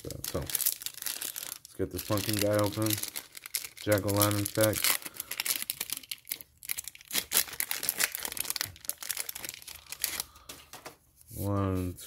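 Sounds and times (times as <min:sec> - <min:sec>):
foil wrapper tearing and crinkling: 0:00.0 - 0:10.4.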